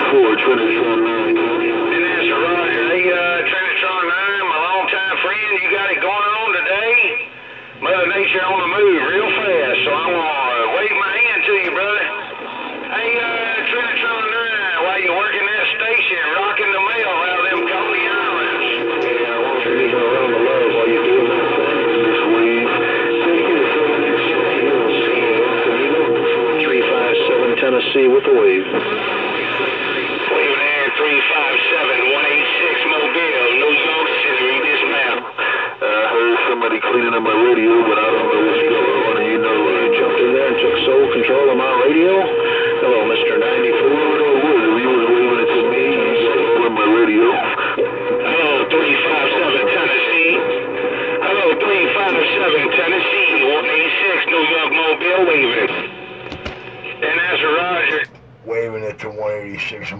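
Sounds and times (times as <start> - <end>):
steady radio whistle: 0.0 - 58.2
radio transmission voices and tones: 0.0 - 59.9.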